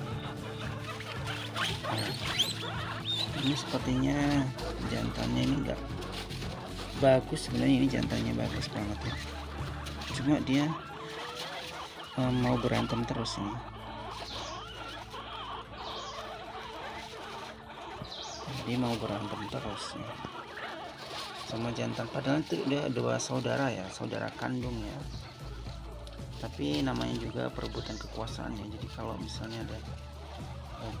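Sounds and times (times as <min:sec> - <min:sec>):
guinea pigs squeaking: 0:00.0 - 0:31.0.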